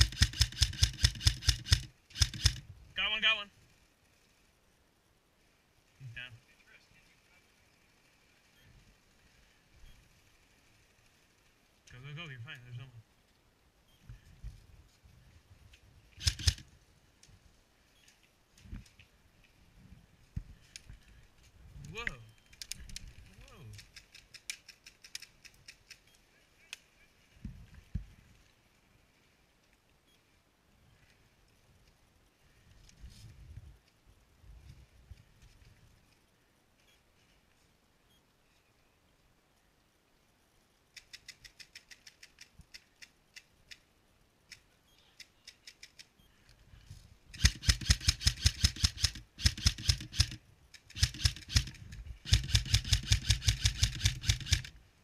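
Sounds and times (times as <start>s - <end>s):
airsoft rifles firing full auto: 0.0s - 2.6s, 16.2s - 16.6s, 47.4s - 54.7s.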